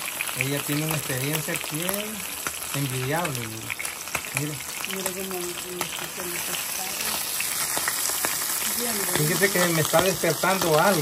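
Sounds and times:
fish frying in hot oil: 0:00.0 - 0:11.0.

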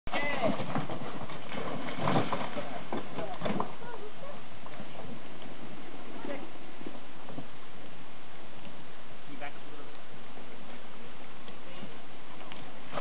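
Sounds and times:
steady background hiss: 0:00.1 - 0:13.0
voices: 0:02.5 - 0:07.0.

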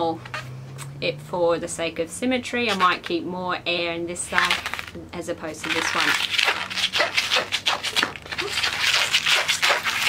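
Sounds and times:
balloon squeaking and rubbing: 0:02.6 - 0:03.1, 0:04.3 - 0:05.0, 0:05.6 - 0:10.0.

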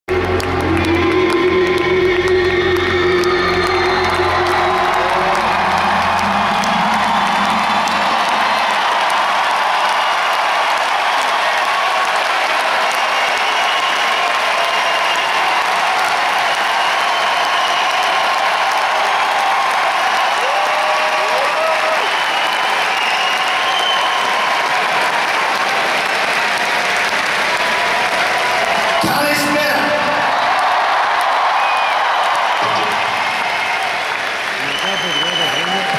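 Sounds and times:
crowd cheering and applauding: 0:00.0 - 0:35.9
shouts from crowd: 0:03.5 - 0:35.9.

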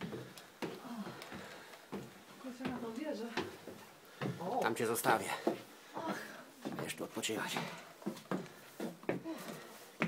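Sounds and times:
heavy breathing: 0:00.0 - 0:02.0, 0:07.5 - 0:10.0
footsteps climbing stairs: 0:00.0 - 0:10.0.

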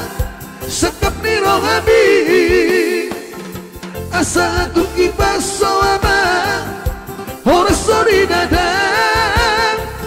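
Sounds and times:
keyboard accompaniment with beat: 0:00.0 - 0:10.0
men singing in harmony: 0:00.0 - 0:10.0.

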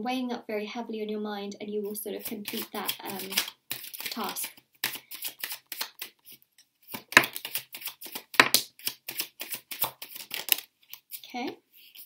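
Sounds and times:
cards clicking and slapping on table: 0:02.2 - 0:06.2, 0:06.9 - 0:11.2.

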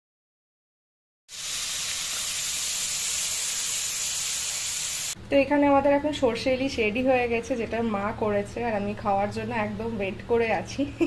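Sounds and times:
fish frying in hot oil: 0:01.3 - 0:05.2.

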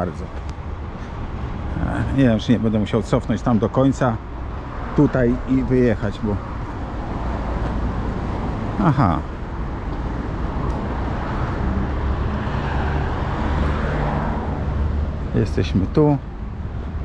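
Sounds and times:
tyres rushing on wet road: 0:01.2 - 0:15.3.

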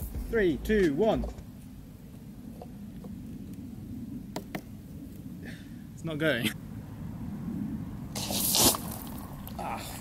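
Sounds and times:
low background rumble: 0:00.0 - 0:08.2.

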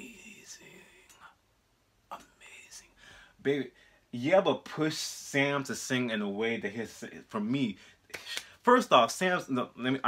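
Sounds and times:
man whispering: 0:00.0 - 0:01.4, 0:02.0 - 0:04.2.

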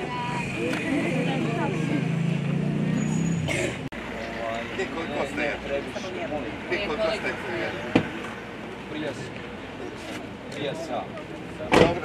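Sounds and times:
people talking at once: 0:00.0 - 0:02.3.

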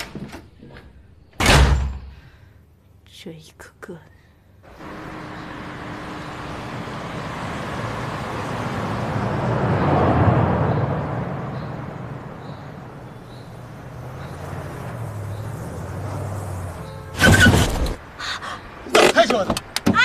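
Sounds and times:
car driving past: 0:04.7 - 0:18.0.

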